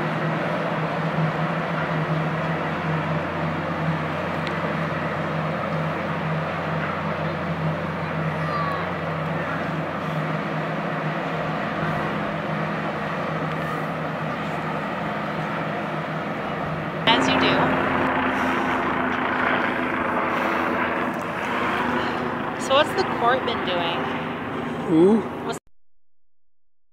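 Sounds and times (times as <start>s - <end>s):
boat engines droning: 0.0s - 25.6s
steady high-toned hum: 0.0s - 25.6s
wind and water: 0.0s - 25.6s.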